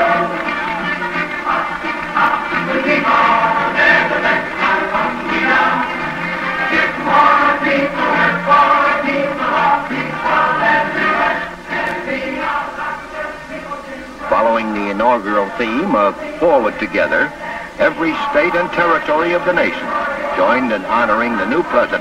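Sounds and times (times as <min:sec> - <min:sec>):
choir singing: 0:00.0 - 0:22.0.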